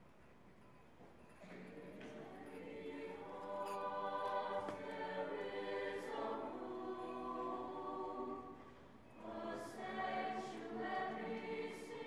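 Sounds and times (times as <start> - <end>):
choir singing: 1.7 - 12.0.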